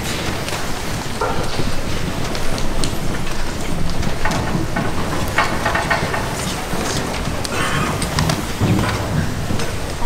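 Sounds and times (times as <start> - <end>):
crowd murmuring: 7.1 - 10.0.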